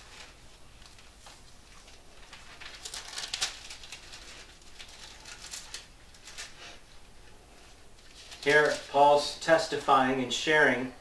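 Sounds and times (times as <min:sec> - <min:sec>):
book pages rustling: 0:00.0 - 0:06.8, 0:07.6 - 0:09.1.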